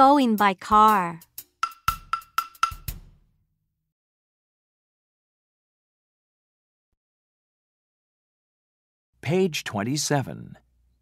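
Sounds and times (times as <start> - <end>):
knocking drum beat: 0.6 - 3.2.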